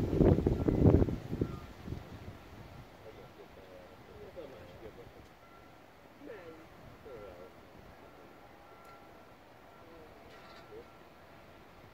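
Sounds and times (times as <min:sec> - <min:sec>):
wind rumble on microphone: 0:00.0 - 0:03.4
distant voices: 0:02.7 - 0:11.9
faint short high beep: 0:05.4 - 0:05.8, 0:08.1 - 0:11.1.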